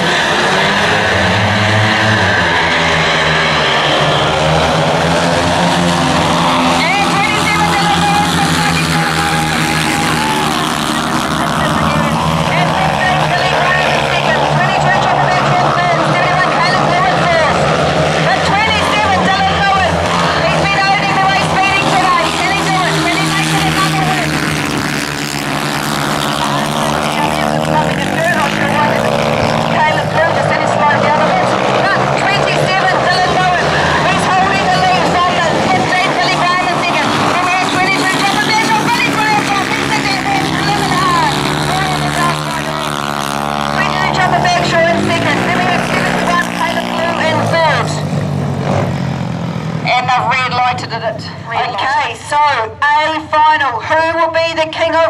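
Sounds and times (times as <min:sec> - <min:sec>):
motorcycle engines revving and racing: 0:00.0 - 0:55.0.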